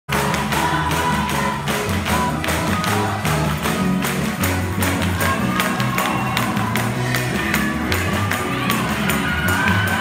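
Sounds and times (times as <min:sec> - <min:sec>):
congregation clapping: 0:00.1 - 0:10.0
live gospel music: 0:00.1 - 0:10.0.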